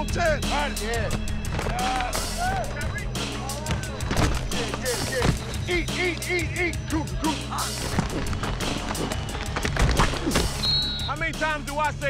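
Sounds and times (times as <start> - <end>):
background music with steady beat: 0.0 - 12.0
coach's whistle blast: 10.4 - 11.4.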